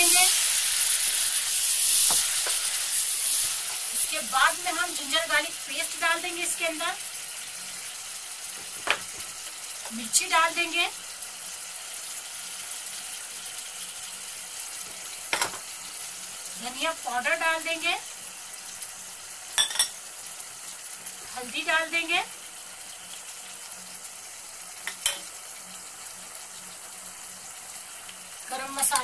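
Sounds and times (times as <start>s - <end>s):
meat sizzling in hot oil: 0.0s - 29.0s.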